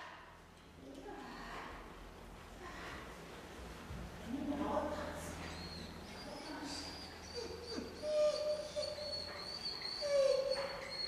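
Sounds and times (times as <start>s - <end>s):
puppy whining: 5.3s - 11.0s.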